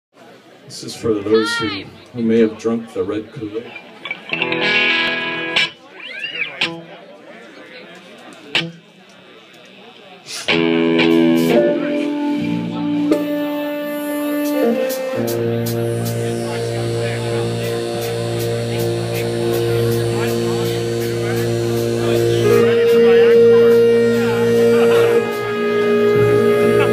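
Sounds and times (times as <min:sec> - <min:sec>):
sustained keyboard chords: 0:10.4 - 0:26.9
held low note: 0:10.8 - 0:26.9.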